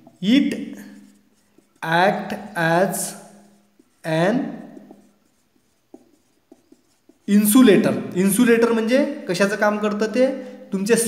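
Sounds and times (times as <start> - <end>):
marker pen writing on whiteboard: 0.0 - 11.0.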